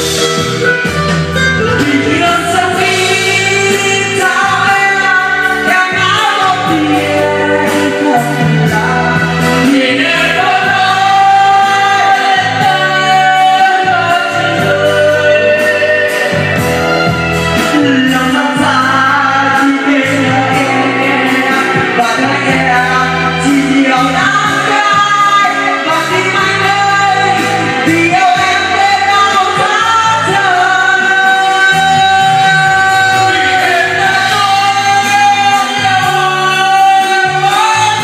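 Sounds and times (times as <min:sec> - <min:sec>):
loud backing track: 0:00.0 - 0:38.0
man singing into microphone: 0:00.0 - 0:38.0.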